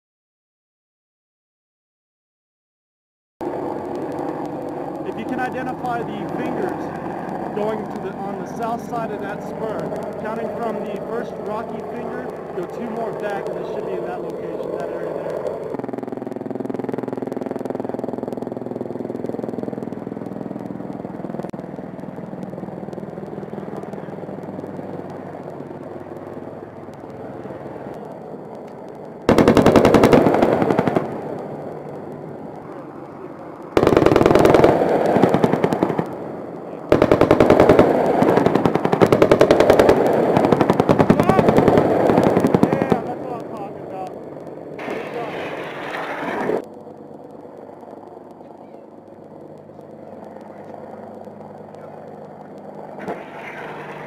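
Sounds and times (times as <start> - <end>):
distant helicopter drone: 3.4 - 54.0
automatic gunfire: 29.3 - 31.3, 33.8 - 36.0, 36.9 - 43.1.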